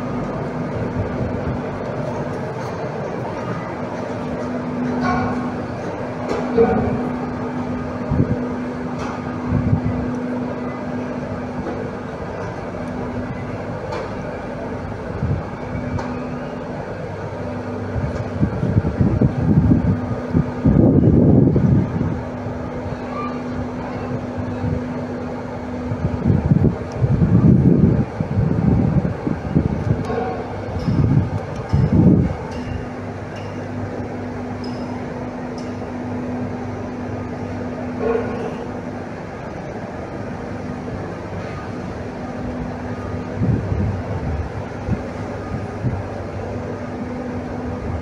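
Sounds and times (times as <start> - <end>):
wind gusts on microphone: 7.8 - 8.6, 9.4 - 10.1, 17.8 - 22.9, 25.8 - 32.5, 42.6 - 46.6.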